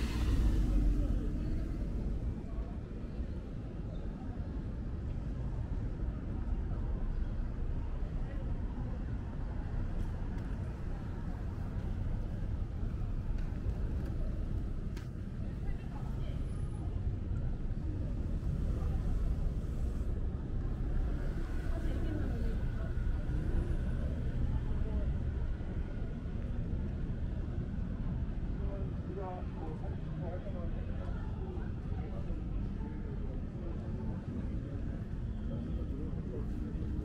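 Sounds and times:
passersby talking: 0.0 - 37.0
traffic rumble: 0.0 - 37.0.

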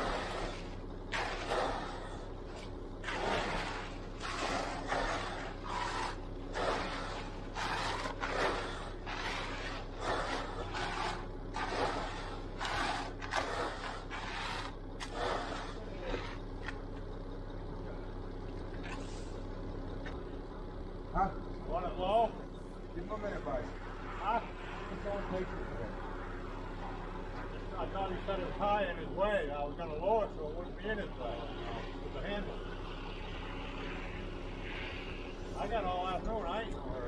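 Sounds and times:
scraping through wet concrete: 0.0 - 16.8
engine hum: 0.0 - 37.0
voices: 14.6 - 16.8, 19.8 - 37.0.

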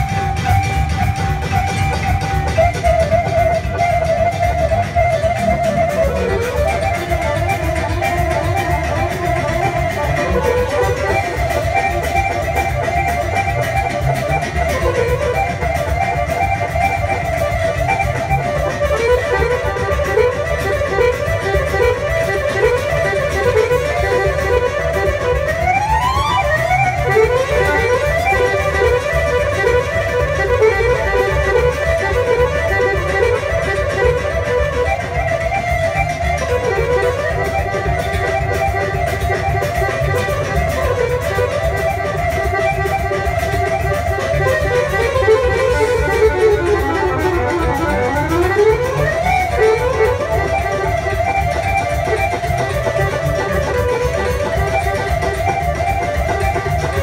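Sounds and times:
accordions playing fast melody: 0.0 - 57.0
double bass and keyboard: 0.0 - 57.0.

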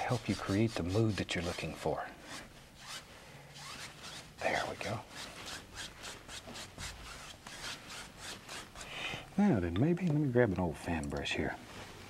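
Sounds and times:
bristle brush scrubbing canvas: 0.0 - 8.9.

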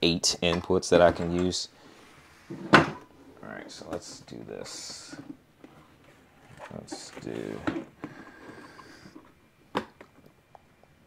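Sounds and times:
rustling of equipment: 3.8 - 9.3.

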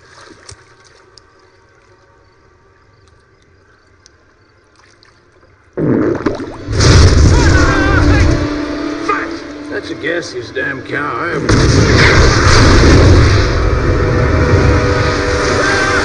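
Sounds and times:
loud blast with deep rumble: 5.8 - 9.0, 11.3 - 16.0.

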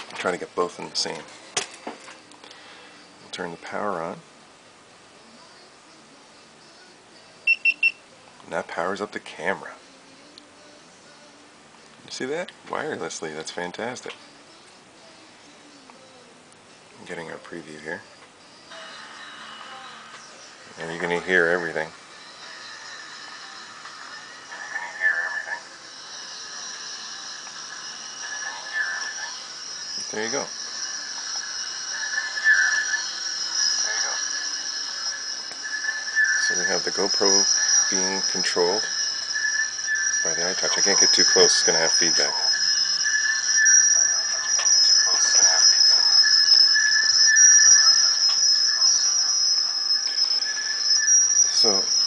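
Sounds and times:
high feedback ringing tone: 0.0 - 4.2, 5.4 - 11.4, 17.1 - 52.0.

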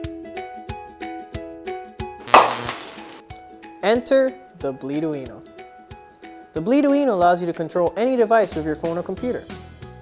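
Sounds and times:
glass breaking crash: 2.3 - 3.2.

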